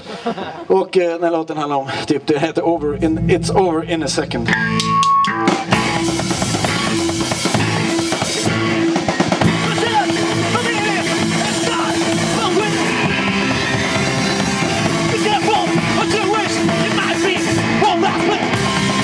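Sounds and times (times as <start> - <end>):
bass guitar: 2.6 - 19.0
person singing: 2.8 - 4.6
distorted electric guitars: 2.8 - 19.0.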